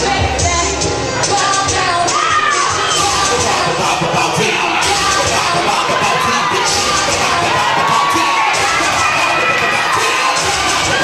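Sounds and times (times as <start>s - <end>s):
loud music playing: 0.0s - 11.0s
audience cheering and shouting: 1.8s - 11.0s.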